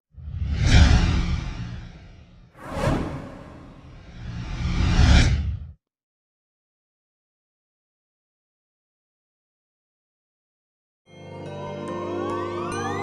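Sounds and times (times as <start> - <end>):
deep rumble: 2.6 - 4.6
whoosh effects: 2.6 - 4.9
short sharp swish: 2.6 - 5.3.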